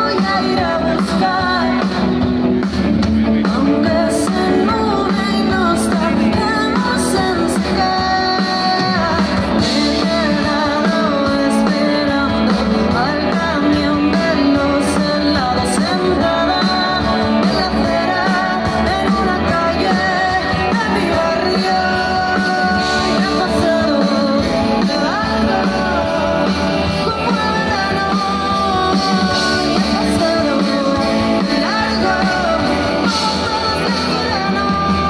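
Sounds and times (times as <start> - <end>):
woman singing: 0.0 - 2.5, 3.4 - 35.0
drums: 0.0 - 35.0
electric guitar: 0.0 - 35.0.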